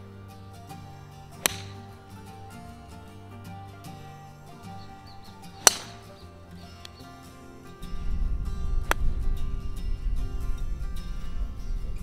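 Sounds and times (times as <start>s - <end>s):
background music: 0.0s - 12.0s
golf club striking ball: 0.6s - 7.6s, 8.8s - 9.4s.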